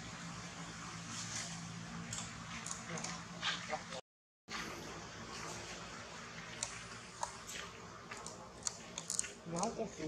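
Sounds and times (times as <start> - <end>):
person speaking: 9.1 - 10.0.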